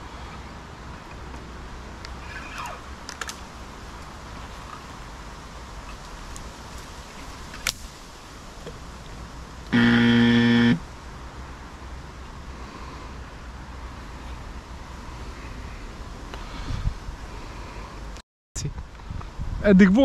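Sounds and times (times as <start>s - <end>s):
outdoor hiss: 0.0s - 18.2s
loud flat buzzer tone: 9.7s - 10.8s.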